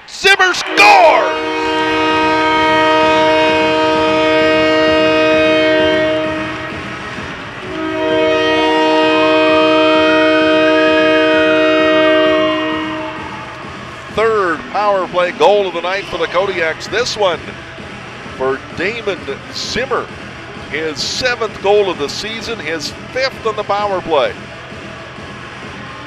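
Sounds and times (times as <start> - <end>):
multi-tone goal horn blasts: 0.2 - 24.4.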